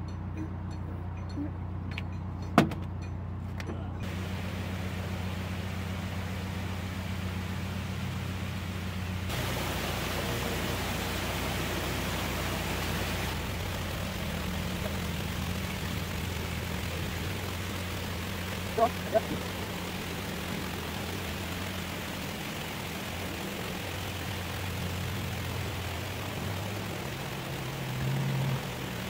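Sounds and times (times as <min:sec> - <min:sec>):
diesel engine running low revs: 0:00.0 - 0:29.0
rushing noise: 0:04.1 - 0:29.0.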